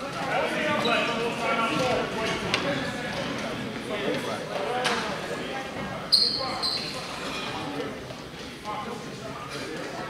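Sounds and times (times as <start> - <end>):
crowd chatter echoing: 0.0 - 10.0.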